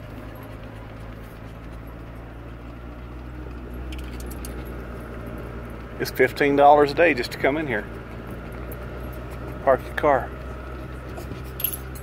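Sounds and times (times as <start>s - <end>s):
light rattles: 0.0s - 12.0s
vehicle engine and tyres: 0.0s - 12.0s.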